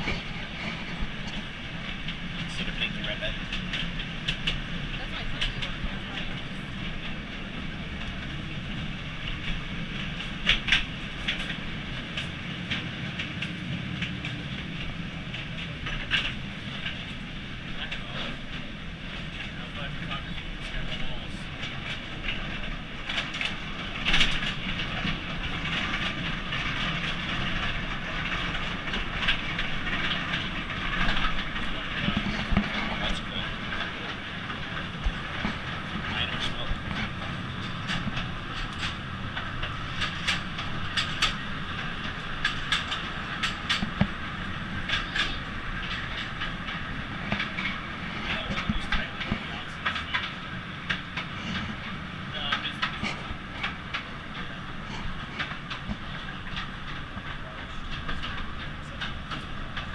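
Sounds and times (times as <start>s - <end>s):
train running on track: 0.0s - 59.9s
wheels clicking on rails: 0.0s - 59.9s.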